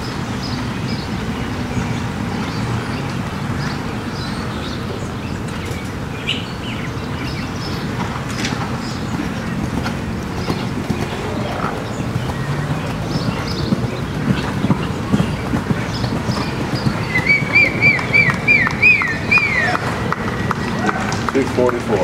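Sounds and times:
horse hoofbeats on sand: 7.3 - 22.0
bird whistling song: 12.2 - 20.7.

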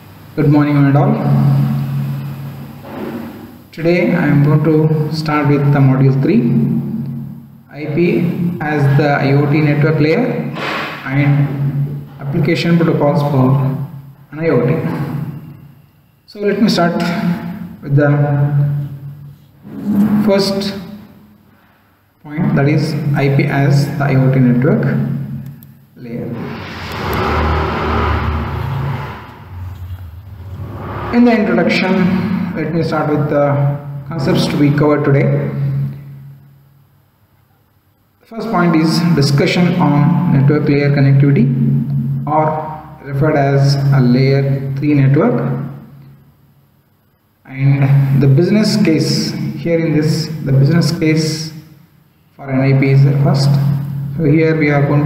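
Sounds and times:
low rumbling noise: 26.0 - 34.4.

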